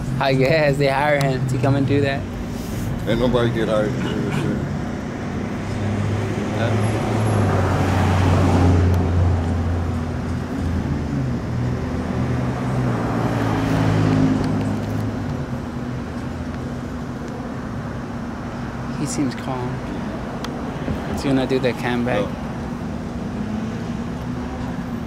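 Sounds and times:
vehicles passing on street: 0.0s - 25.0s.

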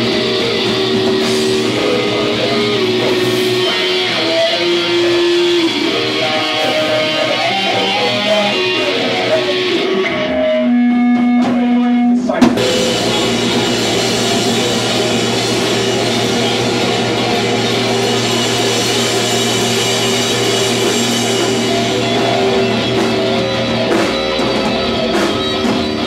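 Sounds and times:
drums: 0.0s - 26.0s
electric guitar riff: 0.0s - 26.0s
live rock band playing: 0.0s - 26.0s.

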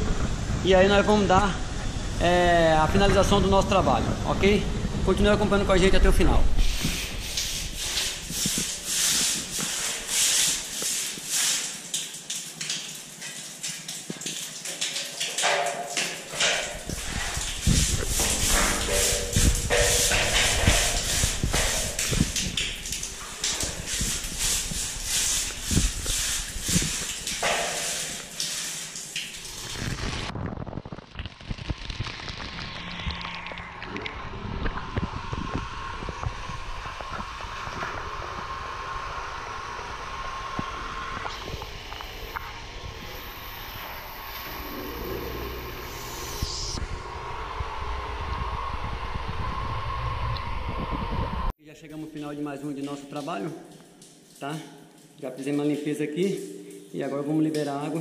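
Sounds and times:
water pouring and splashing: 6.1s - 47.2s, 51.8s - 58.0s
broom scrubbing wet concrete: 6.5s - 30.3s.

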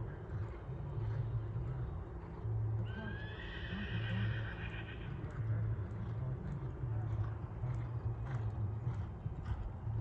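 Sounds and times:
horse neighing: 3.0s - 5.1s.

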